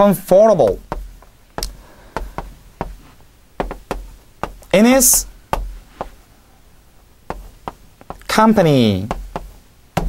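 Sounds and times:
chalk tapping on chalkboard: 0.6 - 6.2, 7.3 - 10.0.

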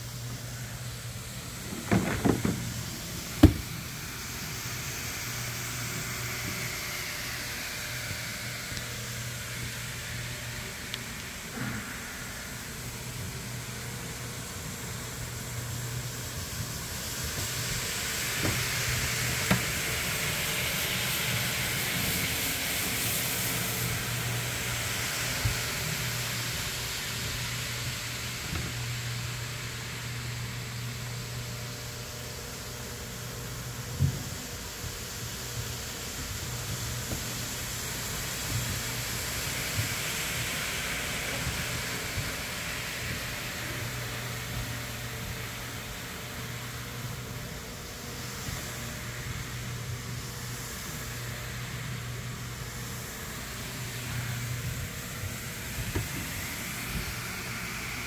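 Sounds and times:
sharp knock: 3.4 - 3.7
floor scrubber motor hum: 47.8 - 58.0
brush hissing on wet rug: 48.1 - 58.0.

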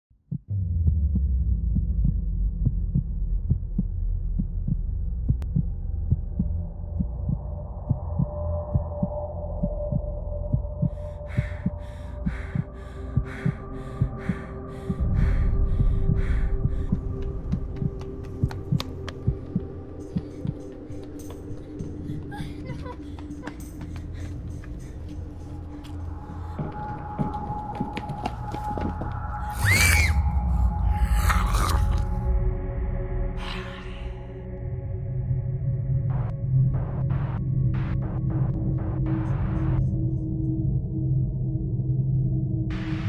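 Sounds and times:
heartbeat-like pulses: 0.3 - 43.0
low throbbing drone: 0.5 - 43.0.

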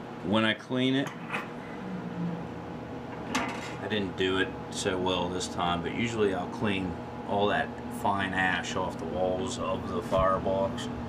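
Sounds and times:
fans humming: 0.0 - 11.0.

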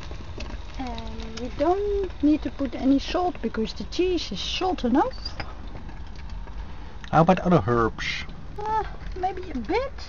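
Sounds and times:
omelette sizzling in a frying pan: 0.0 - 10.0.

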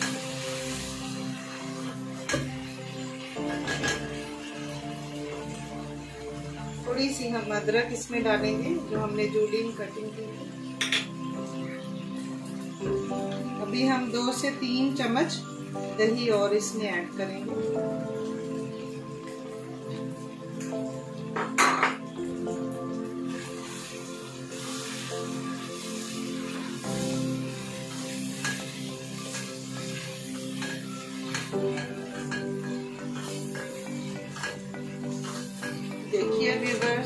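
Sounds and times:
background music: 0.0 - 37.0
spatula scraping a wok: 25.8 - 36.0.

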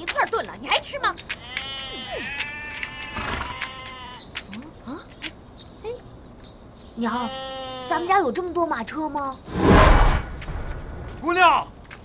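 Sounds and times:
horse whinnying: 1.9 - 3.9.

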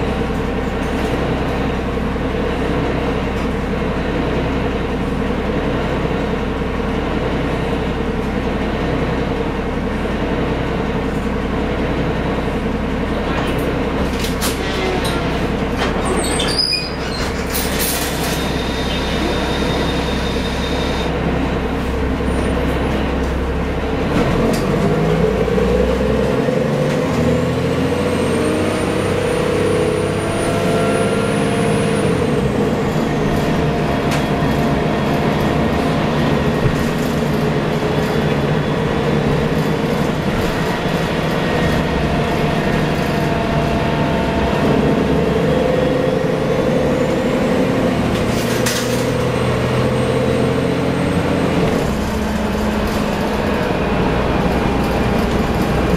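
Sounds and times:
bus diesel engine drone: 0.0 - 55.9
road and body rattle: 10.9 - 55.9.

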